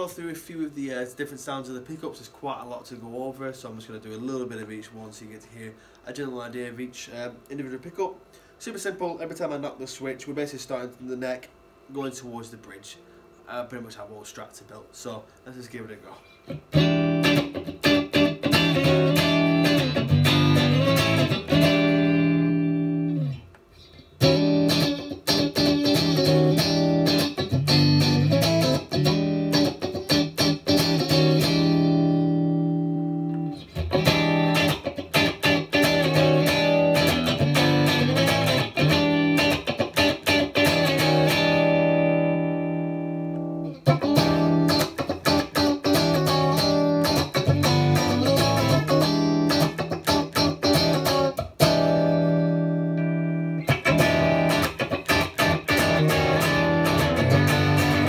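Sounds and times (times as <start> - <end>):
electric guitar through an amp: 16.5 - 58.0.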